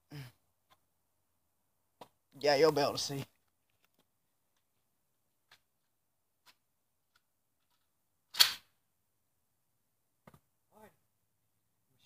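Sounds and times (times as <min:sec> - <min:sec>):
loud sharp crack: 0:08.3 - 0:08.7.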